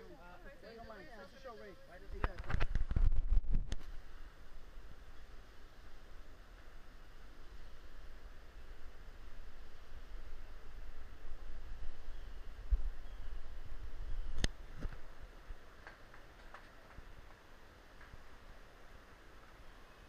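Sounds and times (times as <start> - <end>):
handling and wind rumble: 2.1 - 18.5.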